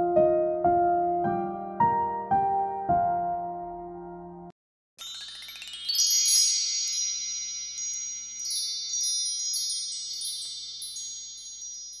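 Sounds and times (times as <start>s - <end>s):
shimmering chimes ringing: 5.0s - 12.0s
tinkling strikes: 5.0s - 12.0s.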